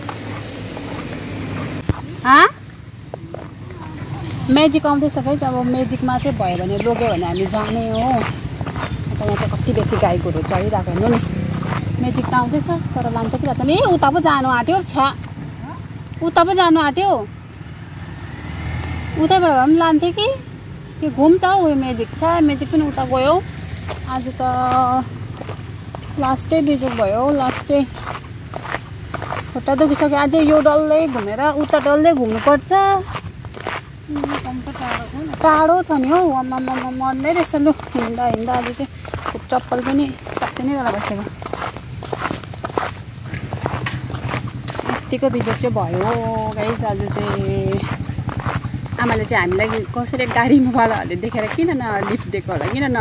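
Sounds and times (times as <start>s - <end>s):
footsteps on wet pavement: 0.0s - 53.0s
low engine rumble: 0.0s - 53.0s.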